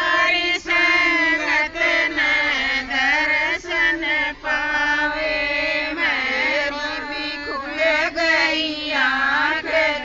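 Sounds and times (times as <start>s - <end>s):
women singing together: 0.0s - 10.0s.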